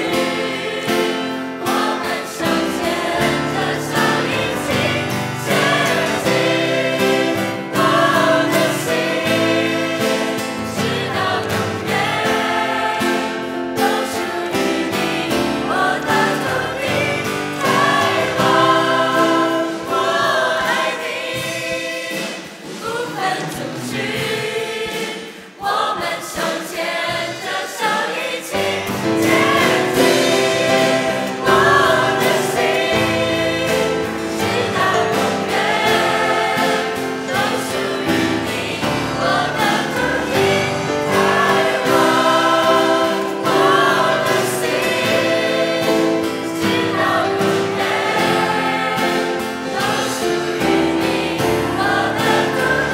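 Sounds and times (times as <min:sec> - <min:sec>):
mixed choir singing: 0:00.0 - 0:52.9.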